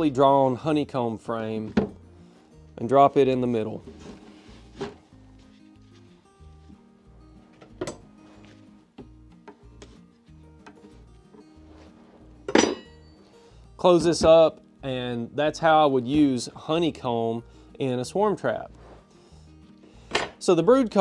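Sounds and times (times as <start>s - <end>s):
background music: 0.0s - 21.0s
wooden frames clicking and knocking: 1.6s - 2.0s, 7.5s - 8.1s.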